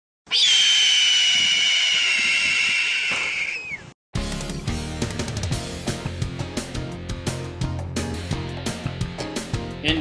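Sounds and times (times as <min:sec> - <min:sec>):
hawk screech: 0:00.3 - 0:03.9.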